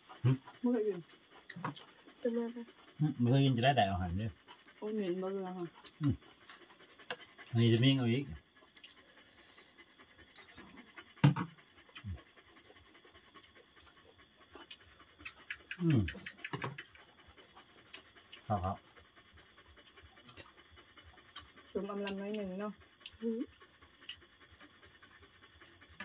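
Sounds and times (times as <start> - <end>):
mouth sounds of people eating: 0.0 - 24.7
night insects chirring: 0.0 - 26.0.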